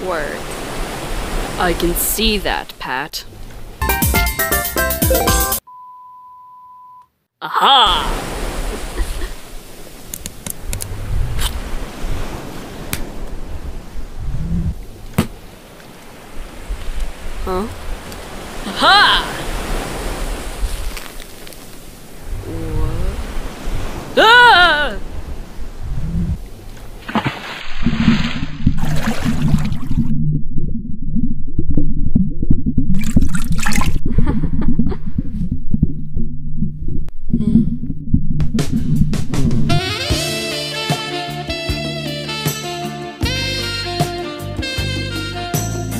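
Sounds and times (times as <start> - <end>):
rushing sea surf: 0.0 - 2.1, 7.9 - 14.6, 15.4 - 26.3
underwater rumbling and bubbling: 10.6 - 15.6, 25.1 - 27.0, 27.6 - 39.8
bubbling splashes: 27.0 - 30.8, 31.6 - 34.2.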